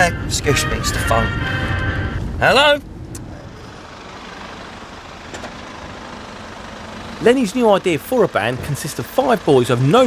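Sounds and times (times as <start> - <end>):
road vehicle rumble: 0.0 - 10.0.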